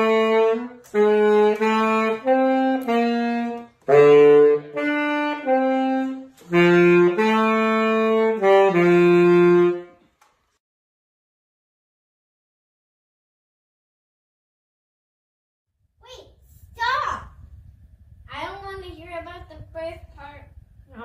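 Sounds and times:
saxophone melody: 0.0s - 10.0s.

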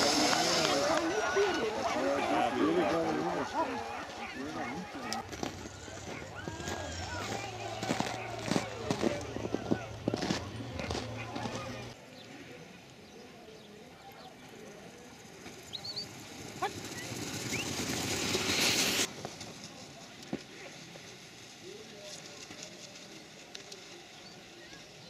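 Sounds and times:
rushing hiss: 0.0s - 1.4s, 17.3s - 19.5s
faint voices: 0.0s - 25.0s.

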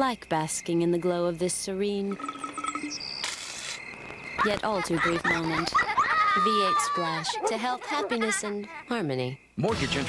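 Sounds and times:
insects: 0.0s - 10.0s
small birds chirping: 0.6s - 9.4s.

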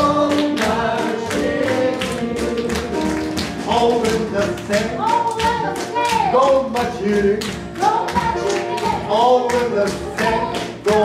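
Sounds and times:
voices singing together: 0.0s - 7.5s, 8.4s - 11.0s
band playing: 0.0s - 11.0s
steady percussive beat: 0.0s - 11.0s.

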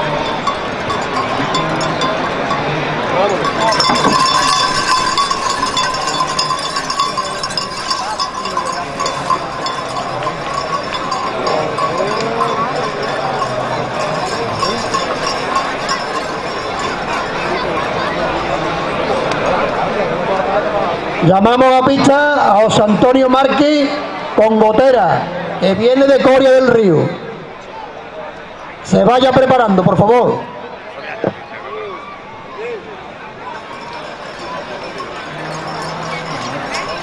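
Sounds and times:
people's voices and calls: 0.0s - 37.0s
sled dragging over sand: 3.2s - 18.8s, 33.5s - 37.0s
metallic clinking of harness chains: 3.3s - 17.4s.

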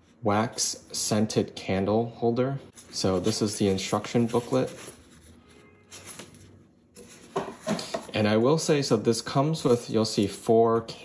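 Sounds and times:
paper rustling: 2.7s - 8.2s.

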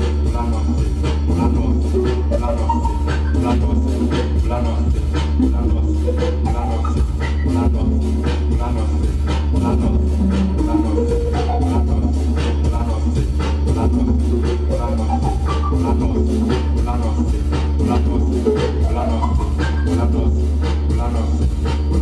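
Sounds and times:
loud music with heavy bass: 0.0s - 22.0s.

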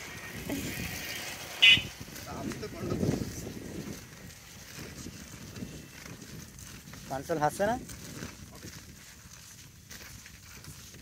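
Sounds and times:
skate wheels rolling on asphalt: 0.0s - 11.0s.

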